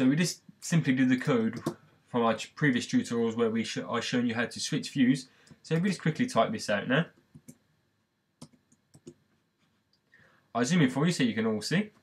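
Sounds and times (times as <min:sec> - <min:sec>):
computer keyboard clicks: 0:08.4 - 0:09.2.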